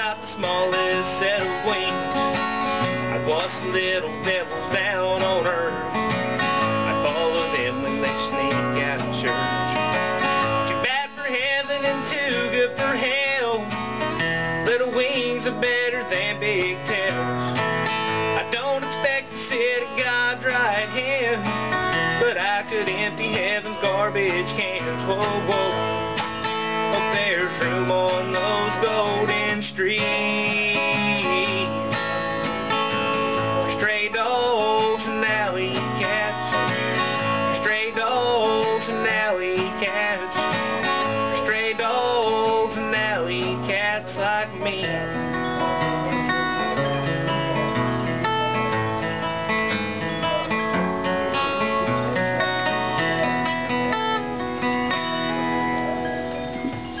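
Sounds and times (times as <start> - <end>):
man singing: 0.0 - 47.8
acoustic guitar playing: 0.0 - 57.0.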